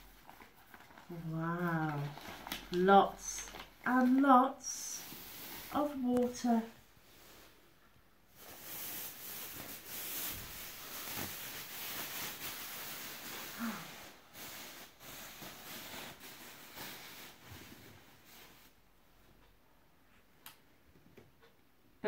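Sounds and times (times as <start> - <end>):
plastic sheeting rustling: 0.0 - 7.7, 8.3 - 18.8.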